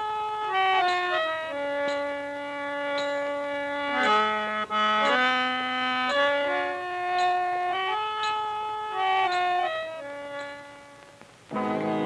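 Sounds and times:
harmonium reed note: 0.0s - 12.0s.

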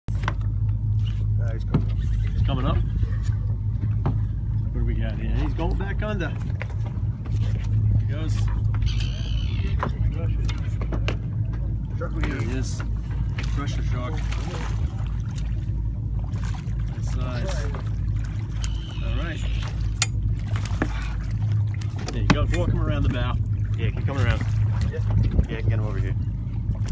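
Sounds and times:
boat engine humming: 0.1s - 26.9s
water splashing: 1.0s - 26.9s.

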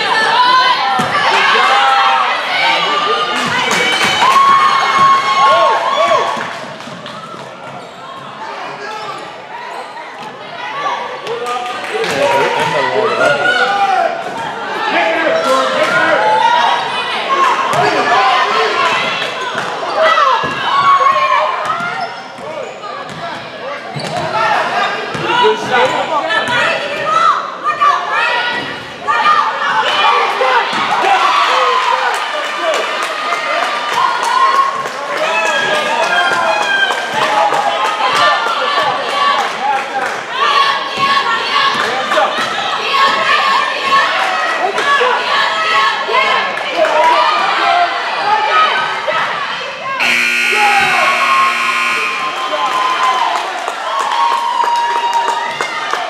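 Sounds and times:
people shouting in a gym: 0.0s - 53.4s
scoreboard buzzer: 50.0s - 52.9s.

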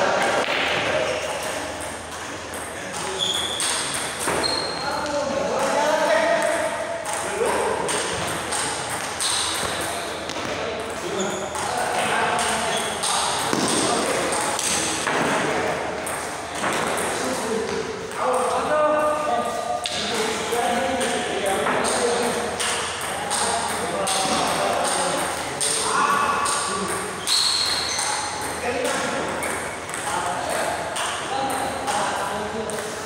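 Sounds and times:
voices talking: 0.0s - 33.0s.

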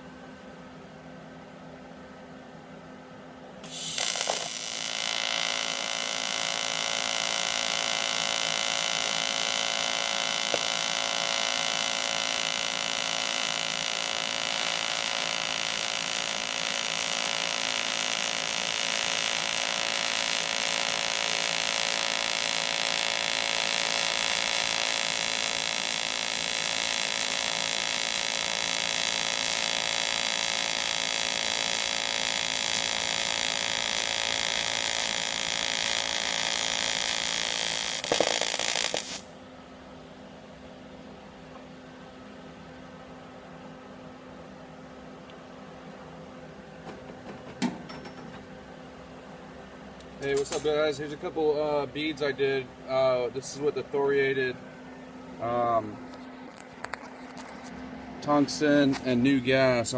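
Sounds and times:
welding arc buzzing hum: 3.5s - 54.6s, 55.3s - 59.9s.

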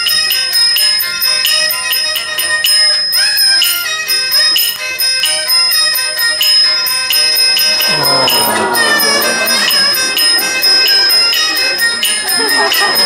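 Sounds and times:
instrumental melody: 0.0s - 13.0s
small bell struck rhythmically: 0.0s - 13.0s.

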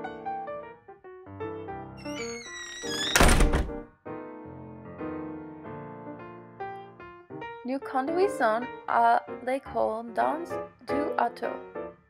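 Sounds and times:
piano music: 0.0s - 12.0s
door shutting: 2.0s - 3.8s.

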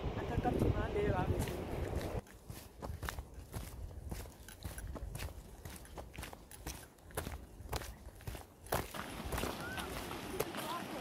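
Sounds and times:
footsteps on gravel: 1.2s - 11.0s.

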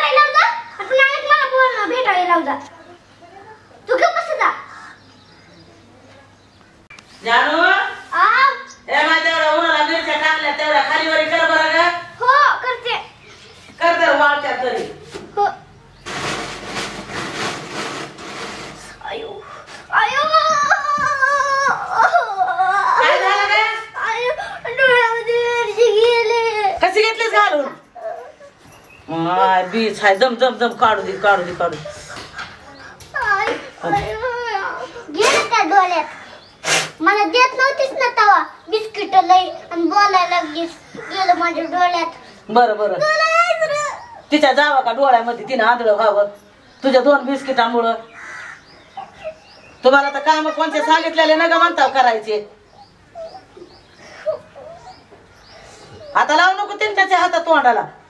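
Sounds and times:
girl wailing in pain: 20.0s - 23.3s
harsh bird call: 48.0s - 51.8s.

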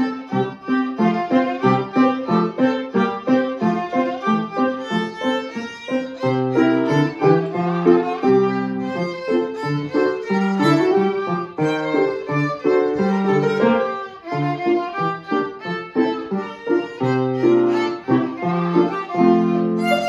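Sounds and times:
piano accompaniment: 0.0s - 20.0s
violin melody: 0.0s - 20.0s.

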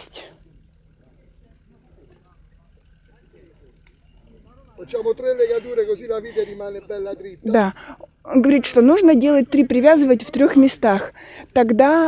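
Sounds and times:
distant talking: 0.0s - 12.0s
faint clicks: 0.5s - 4.8s.

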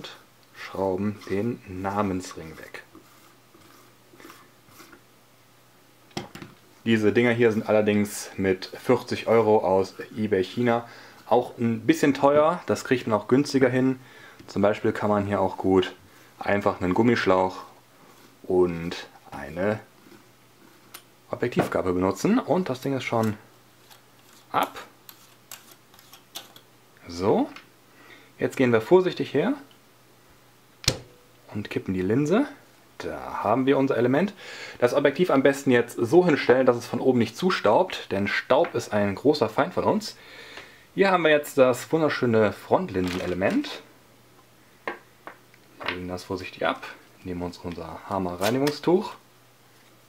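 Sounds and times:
sharp knock: 30.8s - 31.2s.

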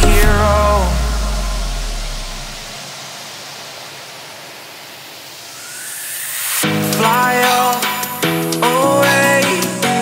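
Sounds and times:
dance music bass: 0.0s - 2.7s
faint rising tone: 0.0s - 7.4s
electronic noise hiss: 0.0s - 9.7s.

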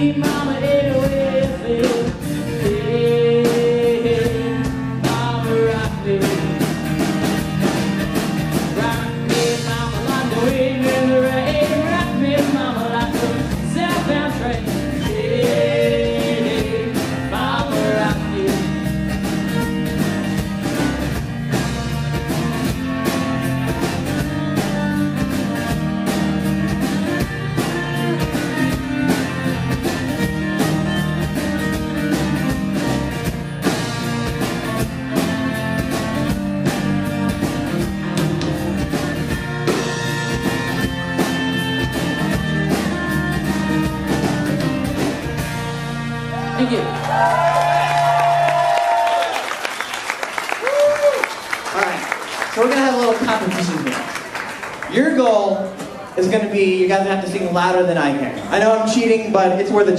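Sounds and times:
folk-rock band playing: 0.0s - 59.9s
gliding viola melody: 22.8s - 33.0s, 34.8s - 46.8s.

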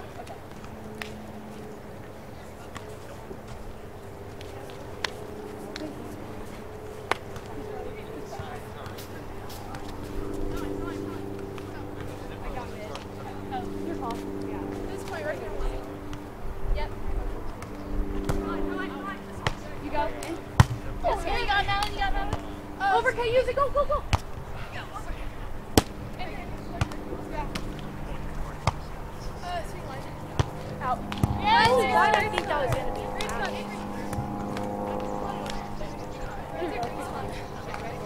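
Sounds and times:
steady low hum: 0.0s - 38.0s
players calling: 18.5s - 38.0s
volleyball slapped by hand: 25.8s - 26.0s.

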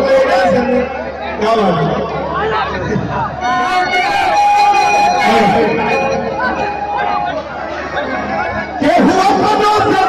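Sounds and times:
crowd chatter: 0.0s - 10.0s
man speaking over public address: 0.0s - 10.0s.

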